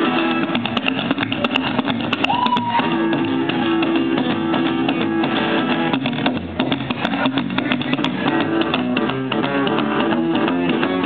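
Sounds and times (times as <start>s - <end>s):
plucked upright double bass: 0.0s - 11.0s
strummed acoustic guitar: 0.0s - 11.0s.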